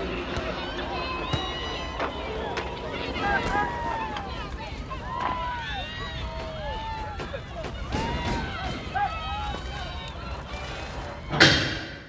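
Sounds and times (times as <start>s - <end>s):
voices calling out and wailing: 0.0s - 12.0s.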